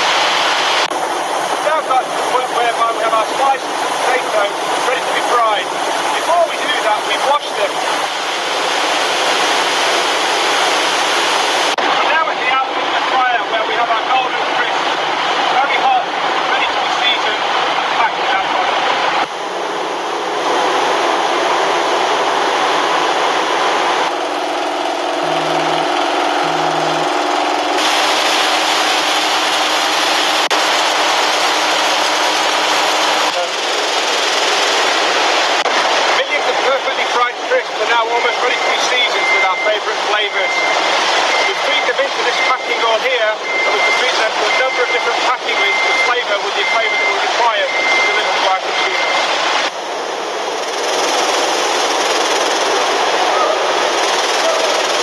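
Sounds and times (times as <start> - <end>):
machinery and conveyors: 18.7 - 55.0
rapid clatter: 24.1 - 35.7, 50.6 - 53.2, 53.8 - 55.0
short high electronic beep: 25.2 - 27.3, 43.4 - 49.2.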